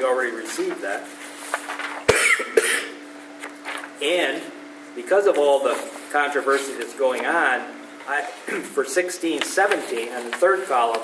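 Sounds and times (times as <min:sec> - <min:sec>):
low room hum: 0:00.0 - 0:11.0
person coughing: 0:02.1 - 0:03.0, 0:08.5 - 0:08.7.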